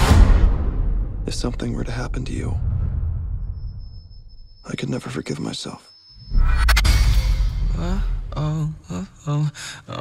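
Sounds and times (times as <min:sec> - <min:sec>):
thin steady high tone: 0:03.5 - 0:09.0.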